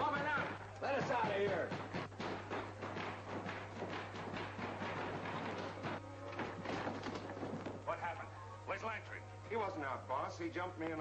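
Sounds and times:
knocks and thumps: 0.0 - 7.9
steady low hum: 0.0 - 11.0
background music: 4.8 - 11.0.

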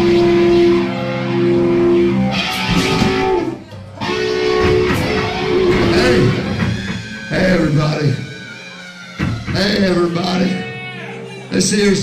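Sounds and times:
electric guitar chords: 0.0 - 10.8.

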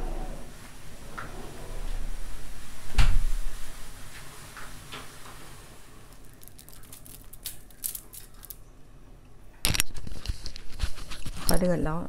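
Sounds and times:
water boiling in saucepan: 3.6 - 6.9.

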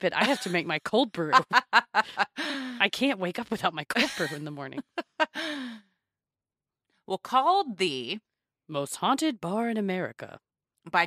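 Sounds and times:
woman sighing: 5.4 - 5.8.

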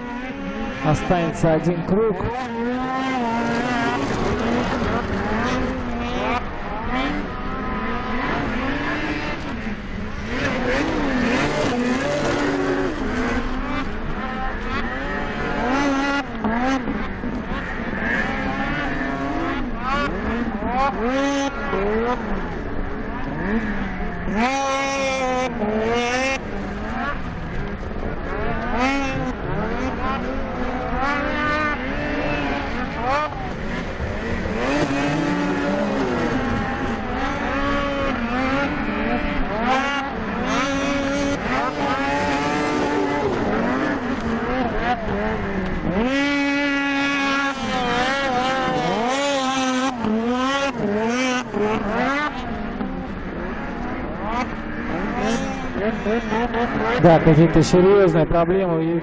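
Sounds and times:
snowmobile engines revving: 0.0 - 59.0.

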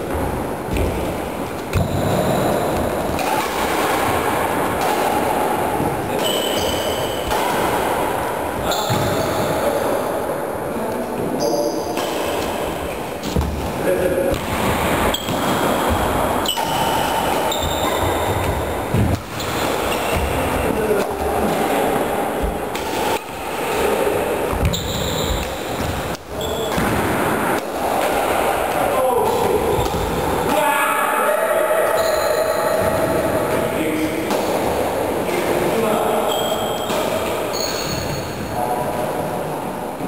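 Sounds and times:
sneakers squeaking: 0.1 - 4.3, 5.0 - 9.7, 11.2 - 27.4, 29.3 - 30.5, 31.9 - 33.2, 36.1 - 38.6
rackets hitting shuttlecock: 0.1 - 9.3, 11.8 - 30.6, 34.2 - 34.9, 36.3 - 38.4.

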